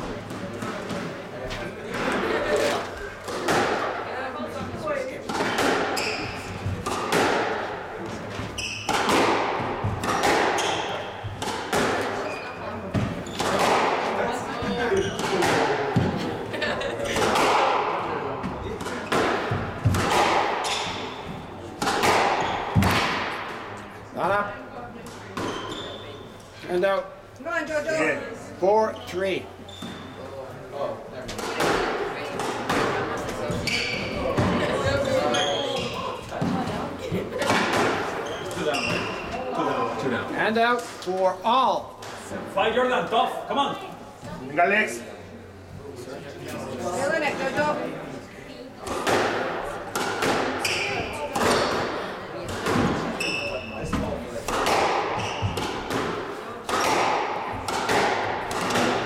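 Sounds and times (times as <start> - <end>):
squash ball smacking rackets and walls: 1.8 - 16.3, 17.1 - 23.8, 31.2 - 39.5, 48.8 - 59.0
shoes squeaking on wooden floor: 6.0 - 6.6, 8.3 - 9.0, 25.4 - 26.2, 33.4 - 36.2, 38.2 - 39.4, 55.2 - 55.6
squash ball smacks: 21.8 - 23.5.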